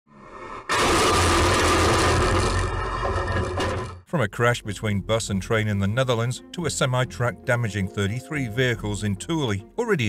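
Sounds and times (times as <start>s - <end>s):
loud road crash: 0.6s - 4.0s.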